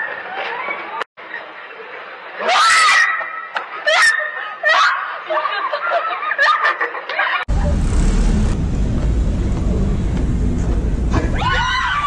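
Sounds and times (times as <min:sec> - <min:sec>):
young women laughing: 0:03.8 - 0:07.5.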